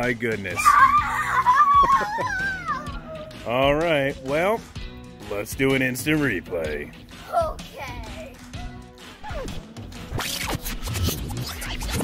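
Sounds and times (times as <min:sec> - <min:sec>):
background music: 0:00.0 - 0:12.0
record scratches: 0:09.4 - 0:12.0.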